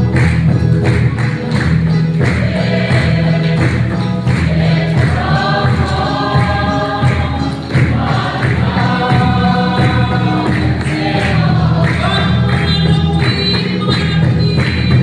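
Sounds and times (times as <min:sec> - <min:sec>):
drum steady beat: 0:00.0 - 0:15.0
electronic keyboard bass: 0:00.0 - 0:15.0
congregation singing a hymn: 0:02.1 - 0:15.0.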